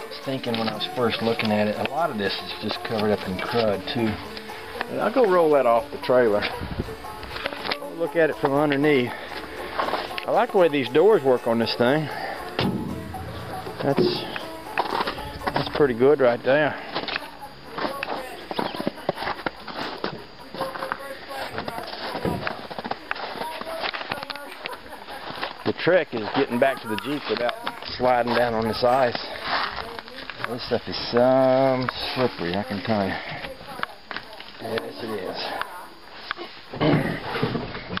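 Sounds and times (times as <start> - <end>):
footsteps on crusted snow: 0.1 - 33.2.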